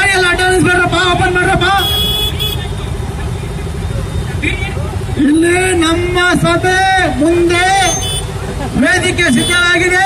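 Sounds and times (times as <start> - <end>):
motorcycle engines rumbling: 0.0 - 10.0.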